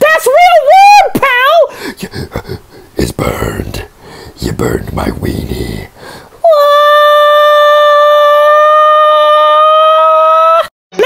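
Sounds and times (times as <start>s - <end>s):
person wailing high-pitched: 6.4s - 11.0s.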